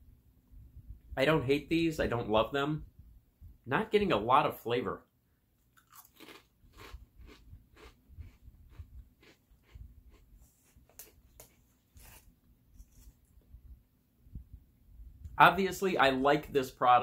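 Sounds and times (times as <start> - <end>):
crackers being chewed: 5.6 - 13.2.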